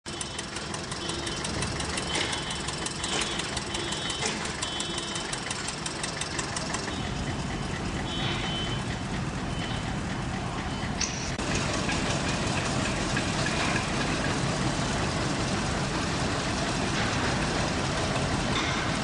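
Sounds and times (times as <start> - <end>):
engine idling: 0.0 - 19.0
fast regular ticking: 0.1 - 18.4.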